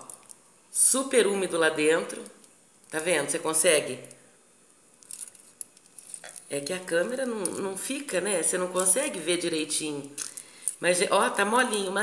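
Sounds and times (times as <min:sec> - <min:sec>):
aluminium foil crinkling: 0:04.9 - 0:07.6.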